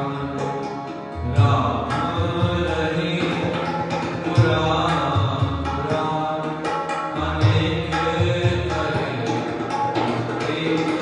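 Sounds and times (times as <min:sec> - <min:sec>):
harmonium sustained chords: 0:00.0 - 0:06.4.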